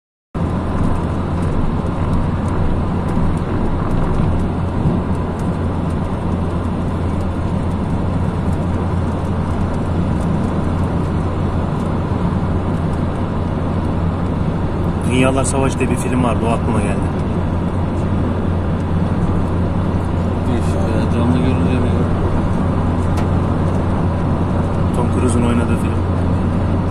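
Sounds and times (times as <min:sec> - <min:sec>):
car road and wind noise: 0:00.4 - 0:26.9.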